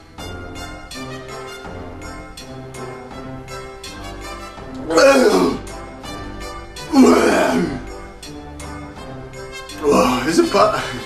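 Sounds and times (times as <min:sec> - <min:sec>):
orchestral music: 0:00.0 - 0:11.0
man gagging: 0:04.8 - 0:05.7, 0:06.9 - 0:07.9.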